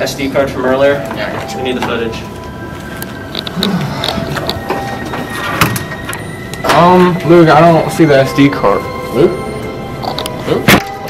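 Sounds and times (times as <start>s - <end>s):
footsteps: 1.0s - 7.4s.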